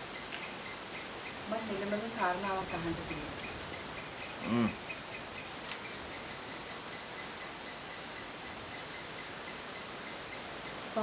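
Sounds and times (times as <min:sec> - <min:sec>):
background hiss: 0:00.0 - 0:11.0
faint high insect chirps: 0:00.0 - 0:11.0.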